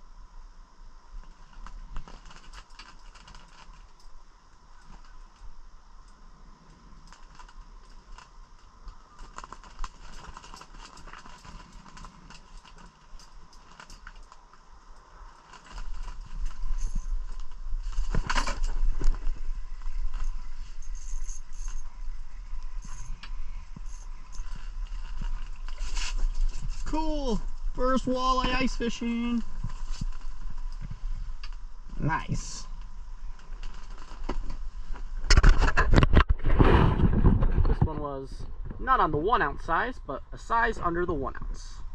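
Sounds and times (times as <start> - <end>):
low steady rumble: 0.0 - 35.3
low hum: 0.0 - 41.9.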